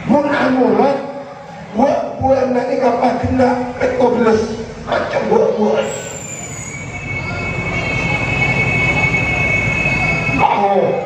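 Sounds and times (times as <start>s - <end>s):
microphone feedback tones: 3.6s - 11.0s.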